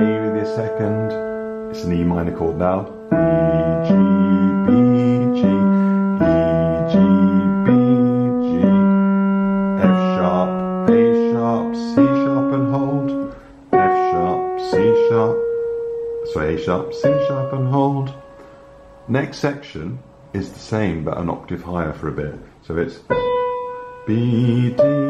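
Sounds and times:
digital piano broken chords: 0.0 - 25.0.

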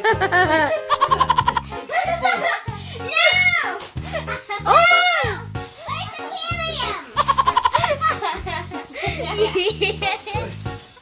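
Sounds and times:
background music with bass line: 0.0 - 11.0
squeaky helium voices: 3.2 - 7.8
high-pitched giggles: 7.2 - 8.4.

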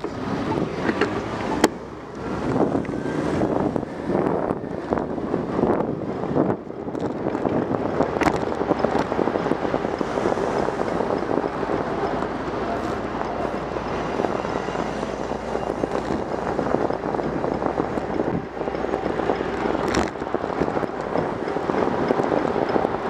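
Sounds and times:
road and tyre noise: 0.0 - 23.0
wind buffeting microphone: 0.0 - 23.0.

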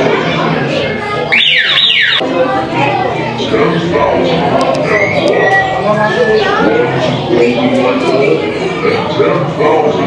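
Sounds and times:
indoor chatter of voices: 0.0 - 10.0.

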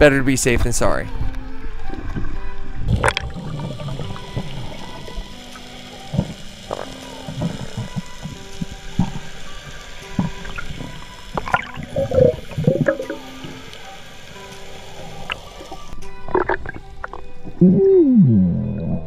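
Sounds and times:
soft background music: 0.0 - 19.0
gurgling water: 1.2 - 19.0.

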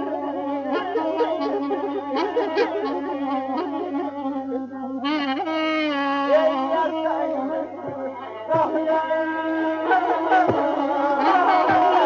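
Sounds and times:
woodwind melody: 0.0 - 8.7.

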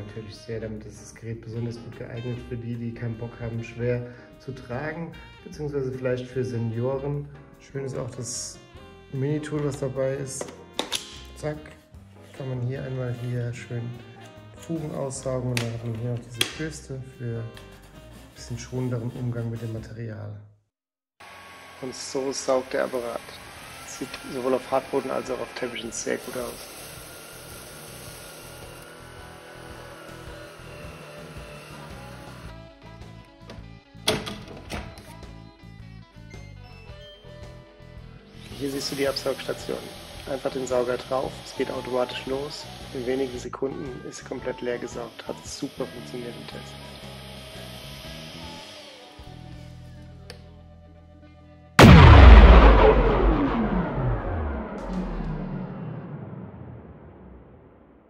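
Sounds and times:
rhythmic background music: 0.0 - 19.9
quiet background music: 0.0 - 20.4, 21.8 - 54.0
vacuum cleaner on carpet: 21.2 - 32.5, 38.4 - 43.4
falling tones sweeping down: 51.8 - 58.0
loud boom hit: 51.8 - 58.0.

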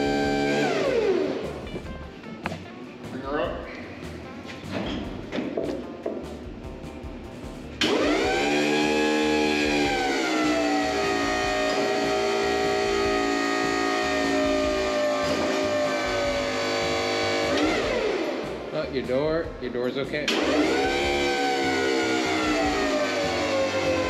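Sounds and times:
hydraulic pump motor whine: 0.0 - 1.4, 7.8 - 18.5, 20.3 - 24.0.

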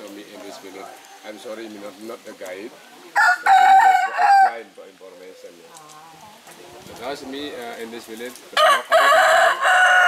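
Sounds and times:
rooster crowing: 3.2 - 4.6, 8.6 - 10.0.

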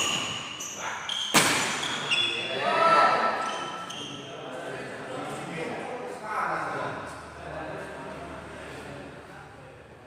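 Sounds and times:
racket hitting shuttlecock: 1.3 - 2.0.

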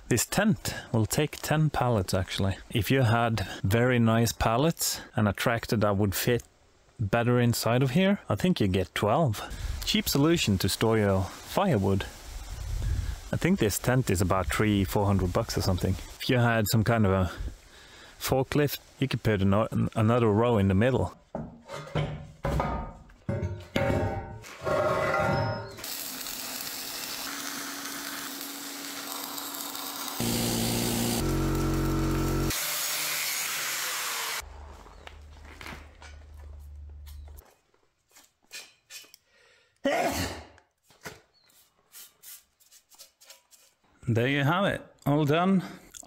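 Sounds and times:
metal knocks and clatter: 21.3 - 25.5
angle grinder on steel: 25.8 - 34.4.

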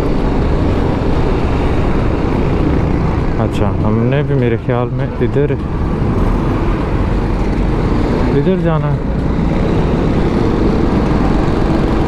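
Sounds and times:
surrounding traffic: 0.0 - 12.0
wind rush on microphone: 0.0 - 12.0.

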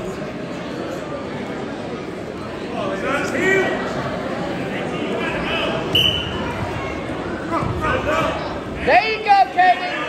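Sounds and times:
people chattering and calling out: 0.0 - 10.0.

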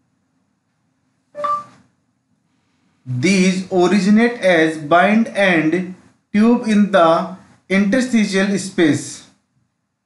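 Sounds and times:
short chime-like tone: 1.4 - 1.8.

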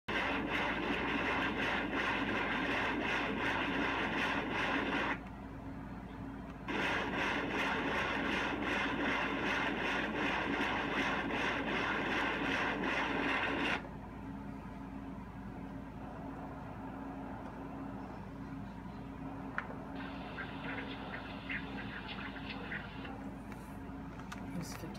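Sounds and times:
low steady hum: 0.1 - 24.9.

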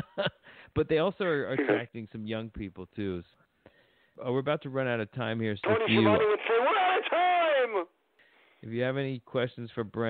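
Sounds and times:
person talking: 1.4 - 1.9, 5.6 - 7.9.

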